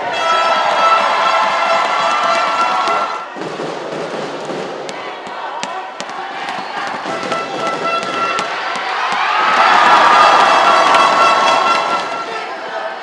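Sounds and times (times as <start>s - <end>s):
crowd cheering and shouting: 0.0s - 3.4s, 4.8s - 13.0s
sharp claps: 4.4s - 12.2s.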